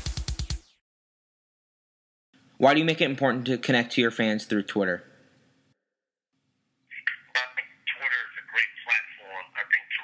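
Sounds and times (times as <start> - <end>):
man talking over telephone: 6.9 - 10.0.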